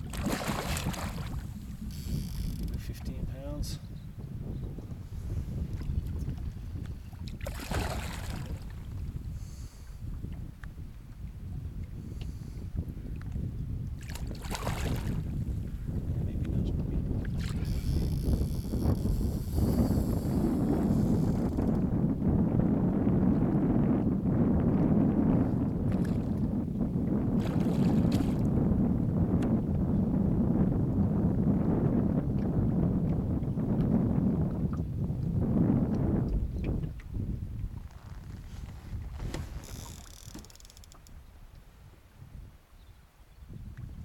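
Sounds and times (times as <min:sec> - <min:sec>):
water slapping against boat: 0:00.0 - 0:02.8, 0:05.6 - 0:09.2, 0:13.2 - 0:21.9, 0:25.7 - 0:26.6, 0:27.2 - 0:29.6, 0:35.8 - 0:41.2
wind rumbling on microphone: 0:00.0 - 0:44.0
boat knocks: 0:39.0 - 0:41.1.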